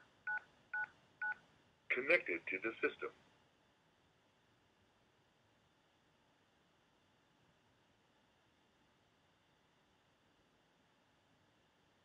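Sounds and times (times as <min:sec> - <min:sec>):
recorded voice prompt: 0:01.9 - 0:03.2.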